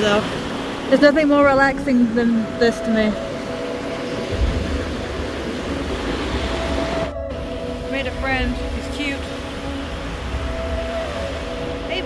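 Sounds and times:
surf rushing: 0.0 - 12.0.

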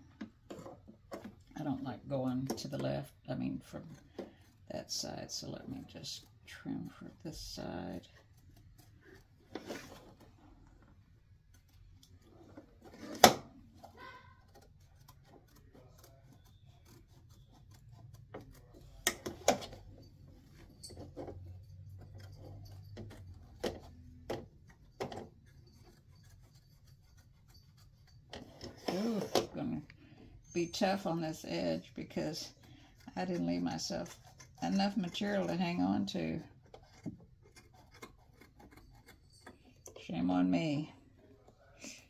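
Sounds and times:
scissors snipping fabric: 13.2 - 19.8.

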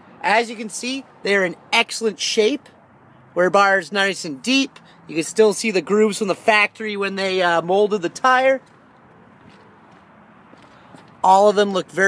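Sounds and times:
footsteps on pavement: 8.6 - 11.6.

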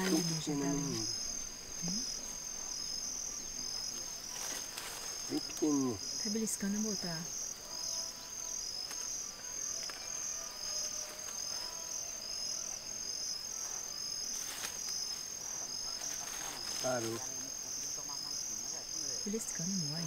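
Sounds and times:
crickets chirping: 0.0 - 20.0.

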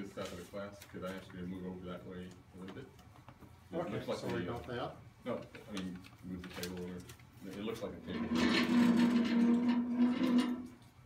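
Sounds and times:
table legs scraping floor: 8.0 - 10.9.

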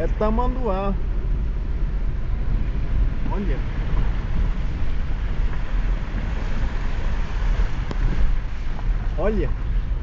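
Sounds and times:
car driving on wet road: 0.0 - 10.0
wind buffeting microphone: 0.8 - 10.0.

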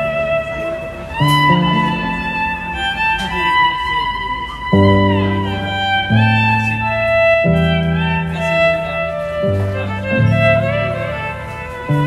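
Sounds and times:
sustained backing chords: 0.0 - 12.0
violin slow melody: 0.0 - 12.0.

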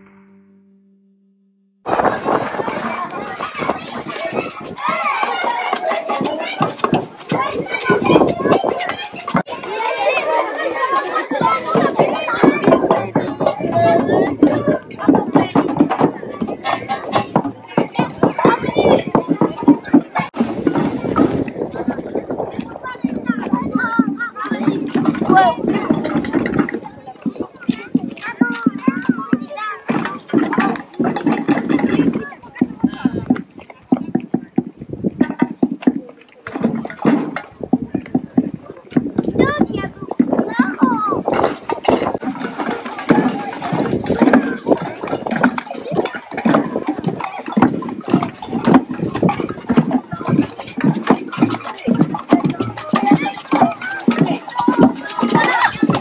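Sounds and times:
children talking and shouting: 0.0 - 0.8, 1.8 - 56.0
shuffling footsteps: 1.9 - 56.0.

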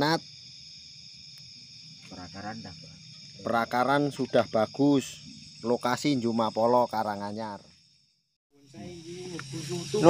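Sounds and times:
night insects chirring: 0.0 - 10.0.

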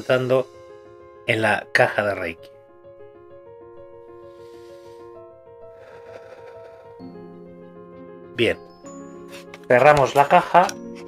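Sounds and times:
soft background music held notes: 0.0 - 11.0.

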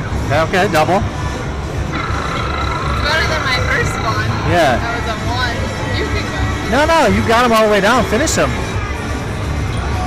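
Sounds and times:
held electronic tone: 1.9 - 5.1.

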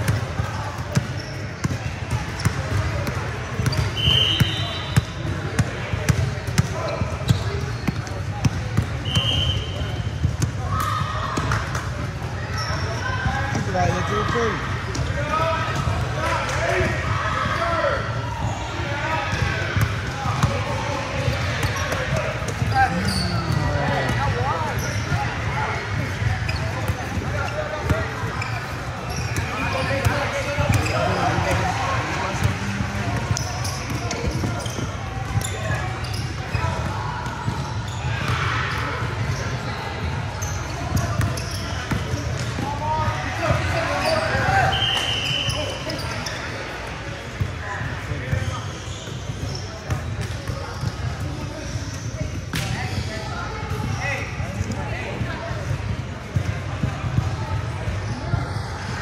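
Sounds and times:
voices of players and onlookers: 0.0 - 59.0.

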